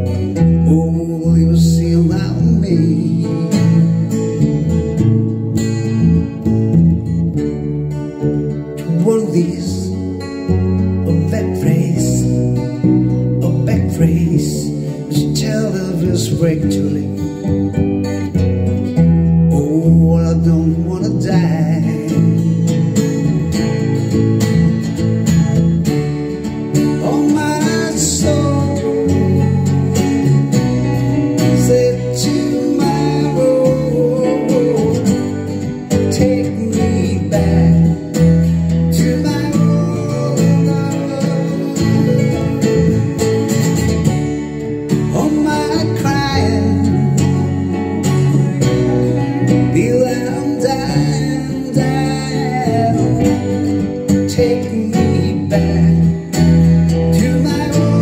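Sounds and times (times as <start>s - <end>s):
acoustic guitar melody: 0.0s - 58.0s
bass and keyboard accompaniment: 0.0s - 58.0s.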